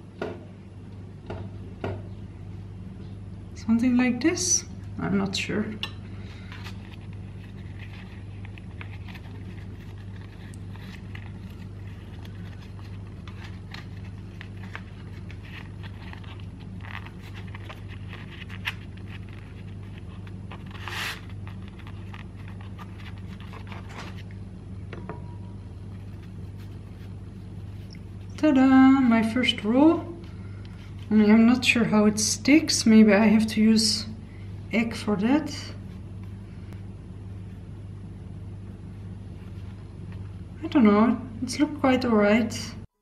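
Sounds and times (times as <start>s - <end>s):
steady low hum: 0.0s - 43.0s
pastry sheet rustling and scraping: 6.2s - 24.4s, 25.7s - 27.9s.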